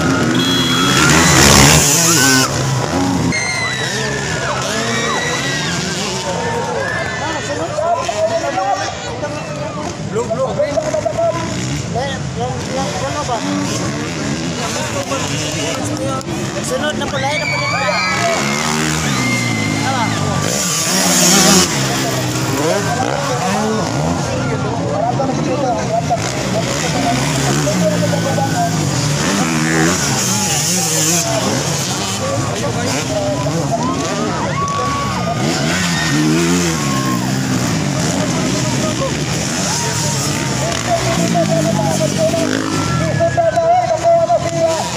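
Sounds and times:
dirt bike engines revving: 0.0s - 44.9s
spectators' voices: 0.0s - 44.9s.

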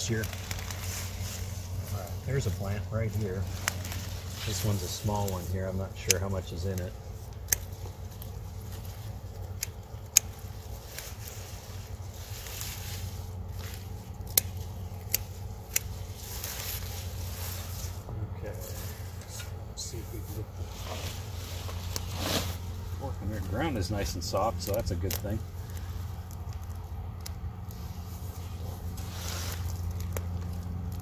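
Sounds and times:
low hum: 0.0s - 31.0s
vines and leaves rustling: 0.0s - 31.0s
sharp snaps: 13.6s - 16.9s, 24.6s - 27.8s.

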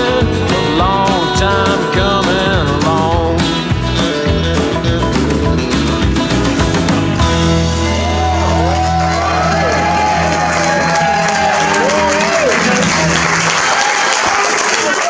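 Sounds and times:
live band chord: 0.0s - 11.0s
audience applause and cheering: 0.0s - 15.0s.

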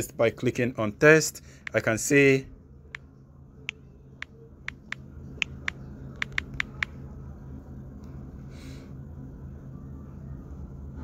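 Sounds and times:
low hum: 1.4s - 11.0s.

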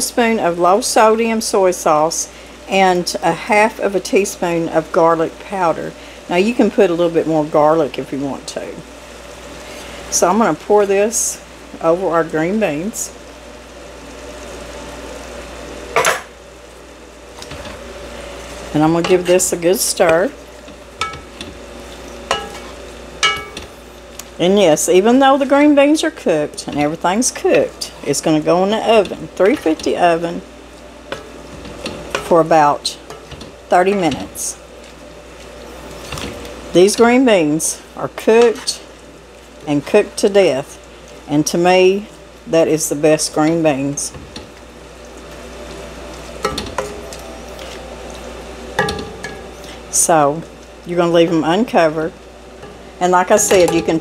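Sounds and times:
spoon stirring beans in a pan: 18.6s - 24.3s, 26.4s - 30.5s
soft wet stirring: 44.2s - 49.8s.

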